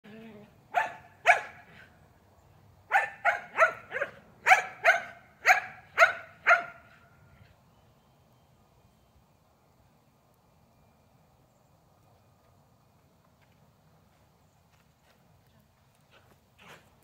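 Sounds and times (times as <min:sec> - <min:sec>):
dog barking: 0:00.7 - 0:01.7, 0:02.9 - 0:06.9.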